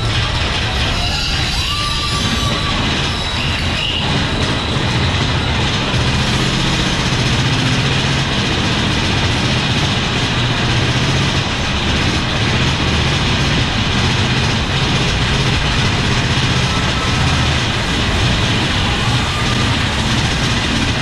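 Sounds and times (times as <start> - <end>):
roller coaster rumbling on track: 0.0 - 21.0.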